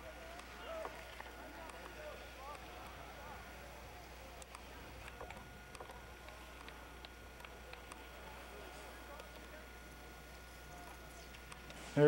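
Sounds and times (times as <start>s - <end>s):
faint distant voices: 0.0s - 12.0s
steady low hum: 0.0s - 12.0s.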